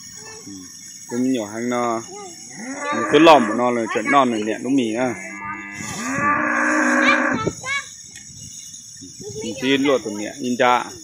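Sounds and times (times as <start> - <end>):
cow mooing: 2.5 - 3.8, 5.0 - 7.5.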